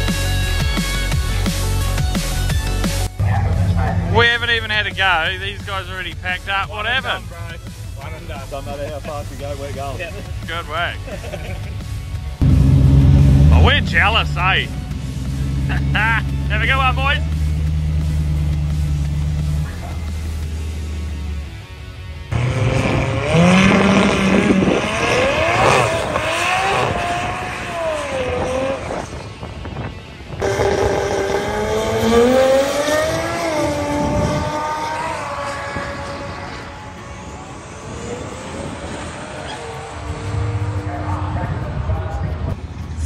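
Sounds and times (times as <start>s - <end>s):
drag racing car engines: 0.0s - 43.0s
car engine idling: 1.2s - 11.2s, 11.8s - 22.5s.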